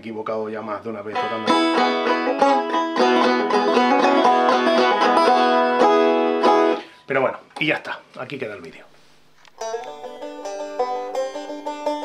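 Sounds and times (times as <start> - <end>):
banjo picking: 1.0 - 7.0, 9.4 - 12.0.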